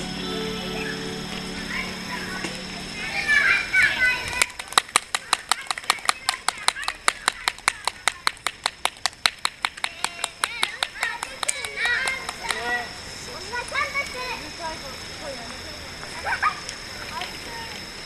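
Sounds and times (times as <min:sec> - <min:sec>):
high voices: 0:00.0 - 0:08.4
hands clapping quickly: 0:04.3 - 0:12.7.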